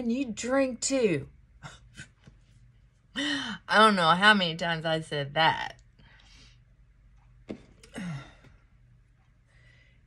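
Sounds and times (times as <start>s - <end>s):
woman sighing: 7.8s - 8.6s.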